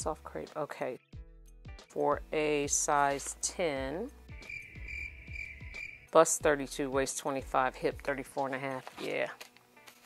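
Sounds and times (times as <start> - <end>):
low bass notes: 2.2 - 8.3
high steady held tone: 4.5 - 6.1.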